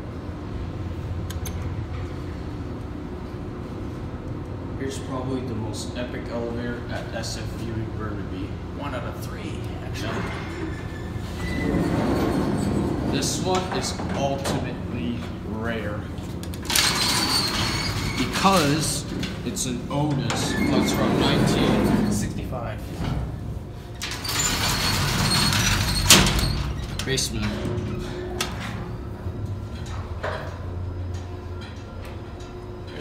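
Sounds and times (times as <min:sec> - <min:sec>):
elevator drive humming: 0:00.0 - 0:33.0.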